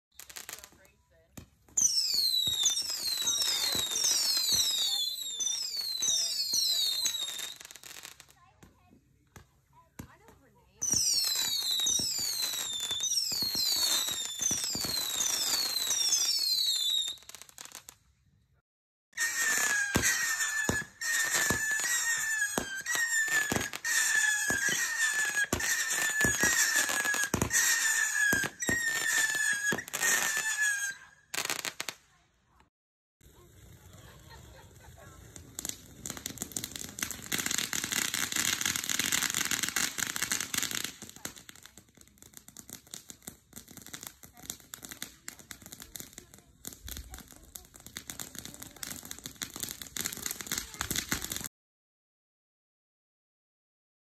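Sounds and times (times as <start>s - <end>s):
firework cracks: 0.1s - 18.0s, 19.2s - 51.5s
firework whistles and pops: 0.1s - 18.0s, 19.1s - 51.5s.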